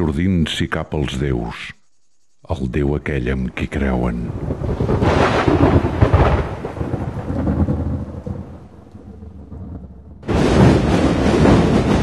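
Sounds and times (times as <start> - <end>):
rolling rumble of thunder: 3.8 - 12.0.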